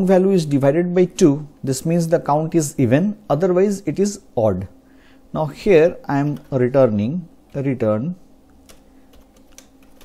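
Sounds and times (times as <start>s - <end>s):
faint keyboard clicks: 8.6s - 10.0s.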